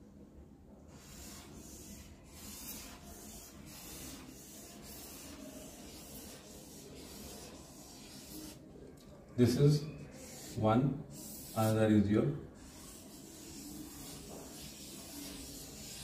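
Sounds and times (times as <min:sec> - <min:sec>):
marker squeaking on whiteboard: 0:00.9 - 0:08.7, 0:09.4 - 0:11.8, 0:12.6 - 0:16.0.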